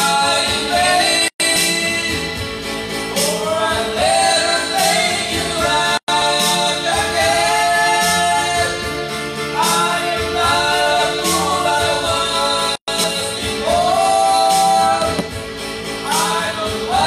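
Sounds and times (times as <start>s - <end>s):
man singing into microphone: 0.0s - 17.0s
music backing track: 0.0s - 17.0s.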